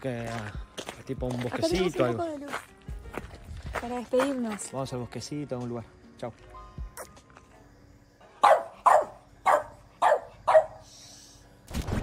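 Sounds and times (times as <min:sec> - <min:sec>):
dog barking: 0:08.4 - 0:10.9.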